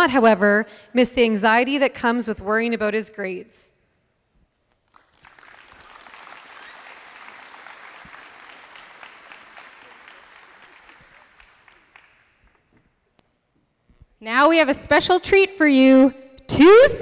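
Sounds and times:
audience applauding: 4.9 - 12.7.

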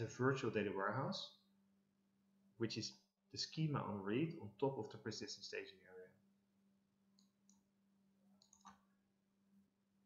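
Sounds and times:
faint steady hum: 0.0 - 10.0
computer mouse clicks: 7.1 - 7.7, 8.4 - 9.0.

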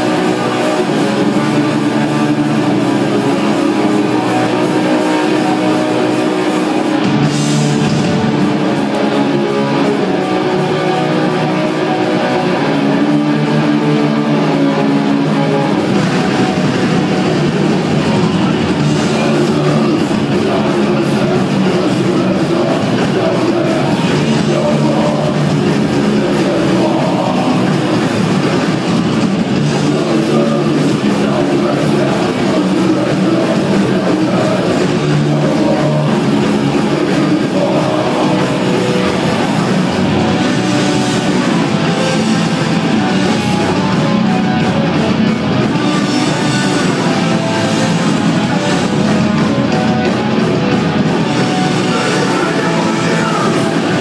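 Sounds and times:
distorted electric guitars droning: 0.0 - 54.0
drums: 0.0 - 54.0.

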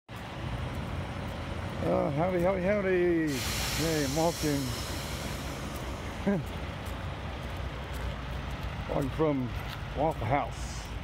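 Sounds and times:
road traffic rumble: 0.1 - 11.0
man speaking: 1.8 - 4.8, 8.8 - 11.0.

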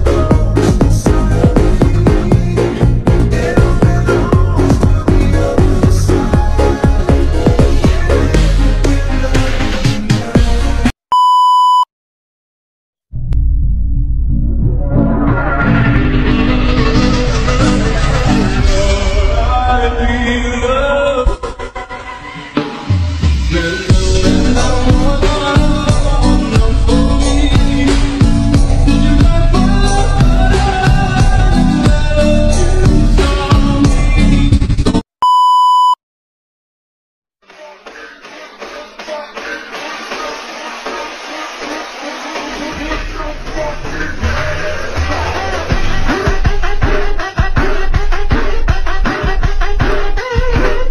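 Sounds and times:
electronic music with a beat: 0.0 - 10.9, 22.4 - 35.0, 37.4 - 50.9
high electronic beep: 11.1 - 11.9, 35.2 - 36.0.

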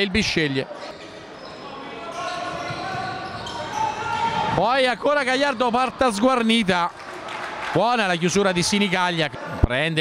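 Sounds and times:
sports hall noise: 0.0 - 10.0.

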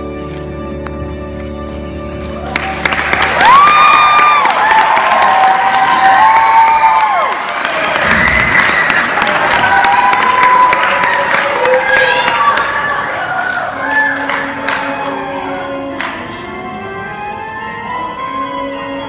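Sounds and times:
audience applauding: 2.2 - 15.4.

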